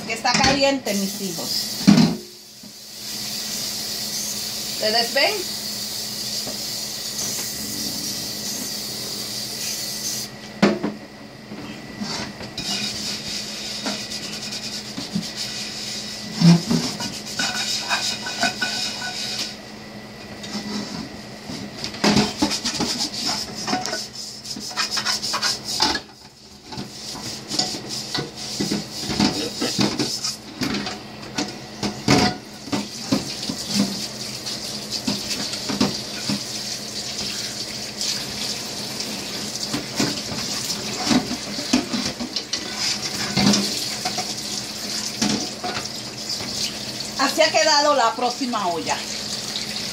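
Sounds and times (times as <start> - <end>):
brush scrubbing metal pot: 12.6 - 19.6, 22.1 - 30.5, 39.0 - 49.9.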